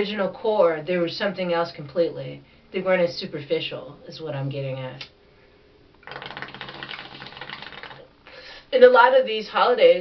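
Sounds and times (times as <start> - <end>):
bong water bubbling: 6.0 - 8.1.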